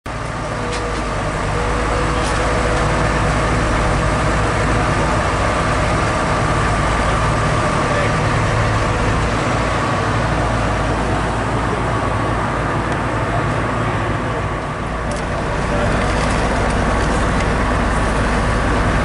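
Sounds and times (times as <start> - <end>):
diesel engines rumbling: 0.0 - 19.0.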